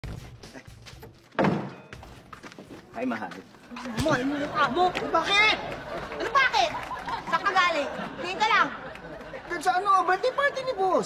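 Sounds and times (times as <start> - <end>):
door thunking shut: 1.3 - 1.8.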